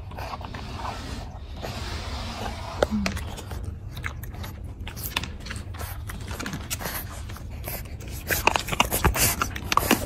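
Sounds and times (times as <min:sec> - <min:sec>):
puppy crunching dry kibble: 0:02.5 - 0:10.0.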